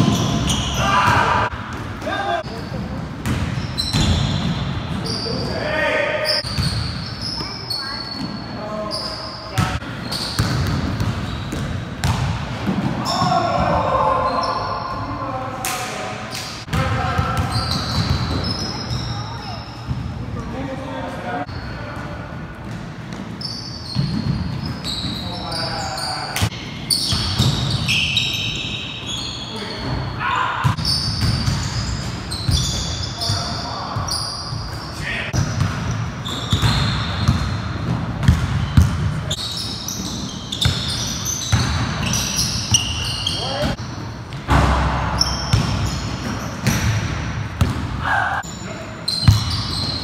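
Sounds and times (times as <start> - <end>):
sneaker squeaks: 0.0 - 1.8, 2.4 - 15.2, 16.3 - 20.2, 21.4 - 50.0.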